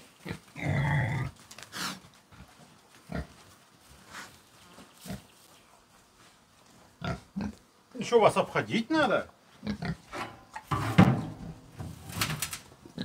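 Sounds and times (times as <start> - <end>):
pig grunting: 0.2 - 2.0, 9.6 - 10.1.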